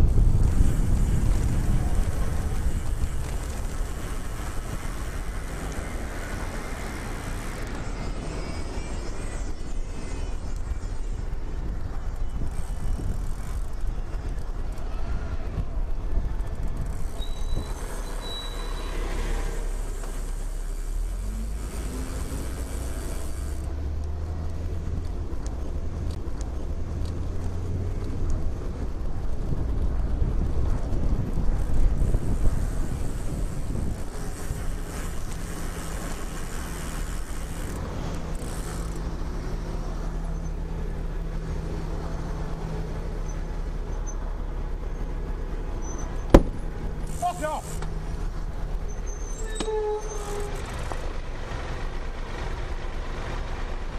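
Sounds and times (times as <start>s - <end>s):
bus diesel engine running: 0.0s - 53.9s
cars passing: 0.0s - 53.9s.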